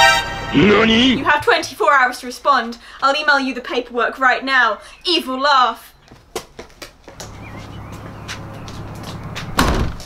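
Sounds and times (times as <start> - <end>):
door slamming shut: 9.5 - 10.0.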